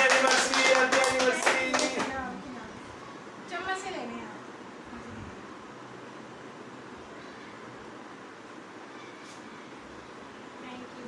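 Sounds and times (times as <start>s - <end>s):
people clapping: 0.0s - 2.2s
people singing: 0.0s - 2.2s.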